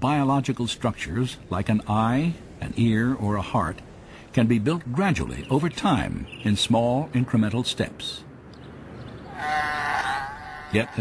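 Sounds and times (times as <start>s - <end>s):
sea lion calling: 9.2s - 11.0s.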